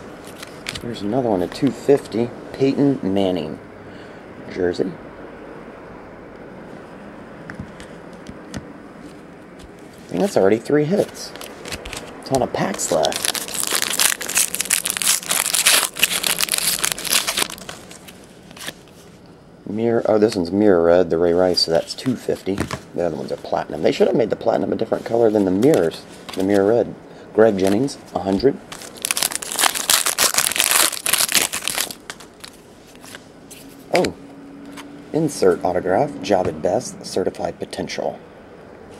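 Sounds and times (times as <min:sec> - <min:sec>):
foil wrapper crinkling: 0:11.0 - 0:18.9, 0:28.7 - 0:33.2.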